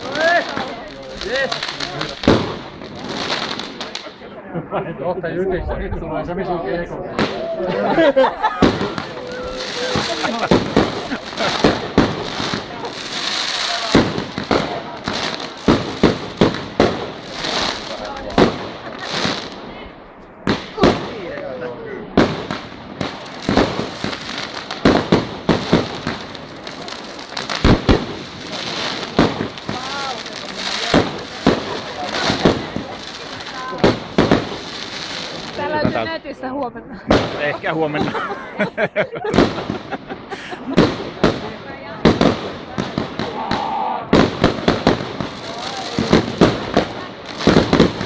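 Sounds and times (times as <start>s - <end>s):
fireworks bursting: 0.0s - 4.4s, 6.8s - 48.0s
hissing crackle of fireworks: 0.0s - 4.5s, 7.0s - 36.4s, 37.0s - 48.0s.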